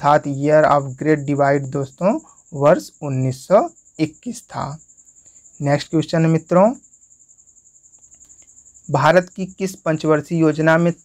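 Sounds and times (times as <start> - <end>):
cricket trilling: 0.0 - 11.0.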